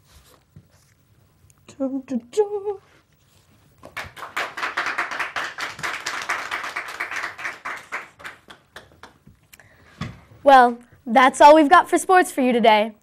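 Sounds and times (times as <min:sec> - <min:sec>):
people clapping: 0:03.8 - 0:09.3.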